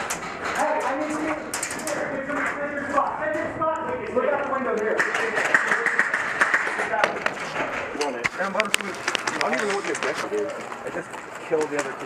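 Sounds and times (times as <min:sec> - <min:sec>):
busy background noise: 0:00.0 - 0:12.0
indistinct voices: 0:00.0 - 0:12.0.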